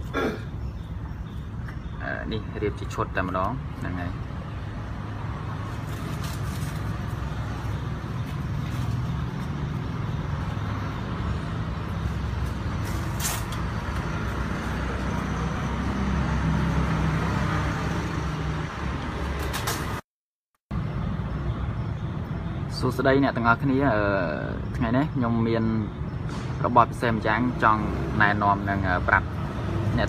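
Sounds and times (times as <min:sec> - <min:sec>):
vehicle engine rumbling: 0:00.0 - 0:20.0.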